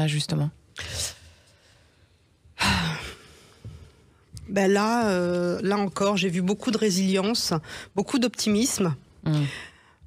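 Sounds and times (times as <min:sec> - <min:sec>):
woman sighing: 0:09.2 - 0:09.7.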